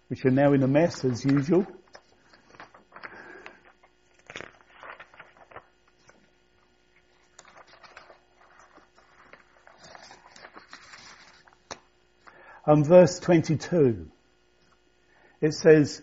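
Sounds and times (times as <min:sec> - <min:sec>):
paper notes rustling: 0:00.0 - 0:11.9
electrical hum: 0:00.0 - 0:16.0.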